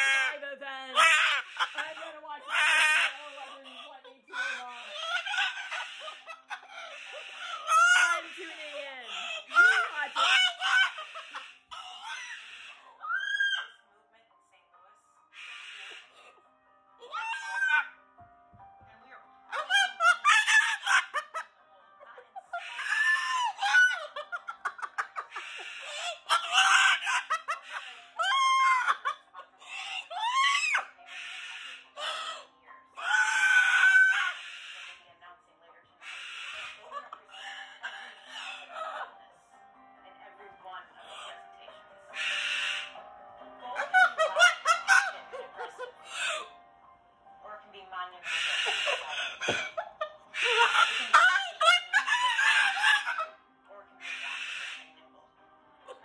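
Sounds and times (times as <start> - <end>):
cockatoo screeching: 0.0 - 13.8, 15.3 - 16.4, 17.0 - 18.0, 19.5 - 21.5, 22.5 - 35.0, 36.0 - 39.0, 42.1 - 43.0, 43.8 - 46.6, 48.2 - 53.4, 54.0 - 54.9.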